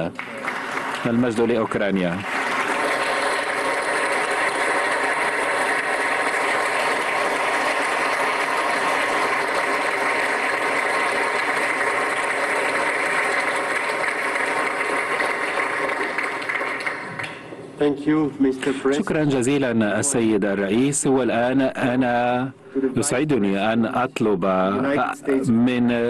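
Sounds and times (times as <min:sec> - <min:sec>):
large audience applauding: 0:00.0 - 0:17.5.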